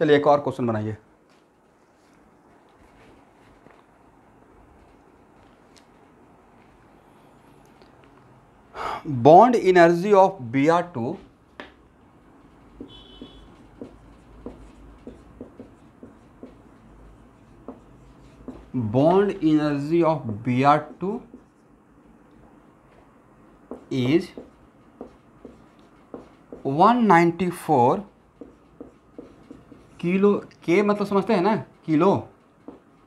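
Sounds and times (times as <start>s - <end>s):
marker writing on whiteboard: 10.8s - 33.0s.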